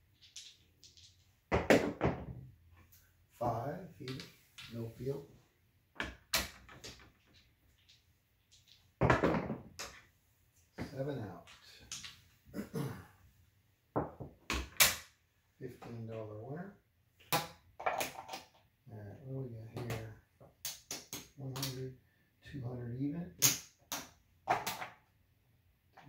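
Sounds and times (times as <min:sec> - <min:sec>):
casino chips clacking: 0:00.2 - 0:01.2, 0:06.4 - 0:08.9, 0:17.8 - 0:18.6.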